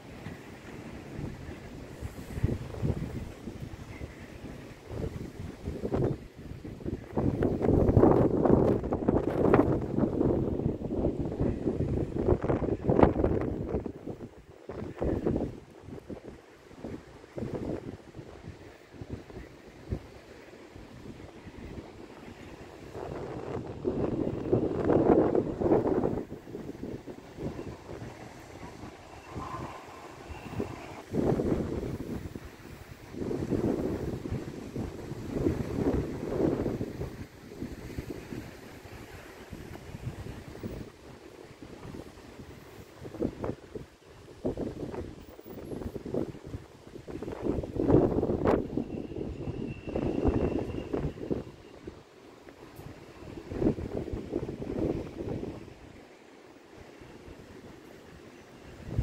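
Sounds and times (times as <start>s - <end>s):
wind buffeting microphone: 0.0s - 56.0s, 56.8s - 59.0s.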